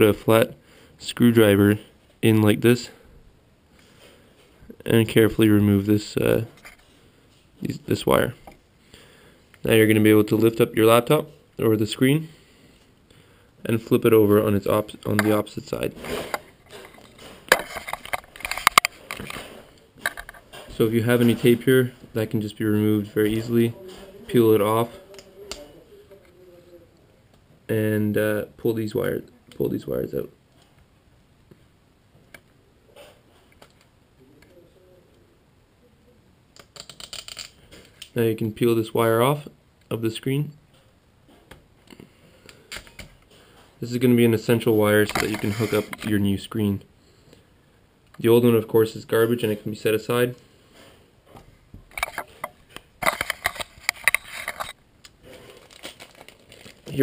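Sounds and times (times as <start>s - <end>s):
metal and plastic clicks and knocks: 16.3s - 20.7s, 51.9s - 54.8s
tape peeling clicks and crinkles: 36.6s - 38.1s, 52.8s - 57.0s.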